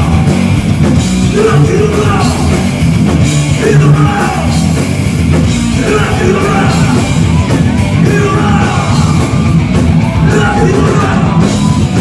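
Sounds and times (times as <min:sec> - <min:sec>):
distorted electric guitars: 0:00.0 - 0:12.0
pounding drums with cymbals: 0:00.0 - 0:12.0
shouted vocals: 0:01.3 - 0:02.6, 0:03.6 - 0:04.6, 0:05.7 - 0:12.0.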